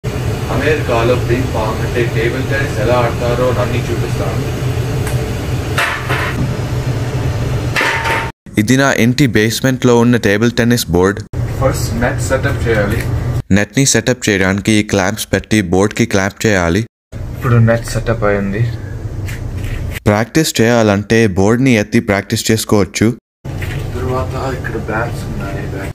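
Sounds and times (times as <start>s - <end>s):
air conditioner humming: 0.0s - 25.9s
man's voice: 8.5s - 11.3s, 11.9s - 16.9s, 20.0s - 23.2s.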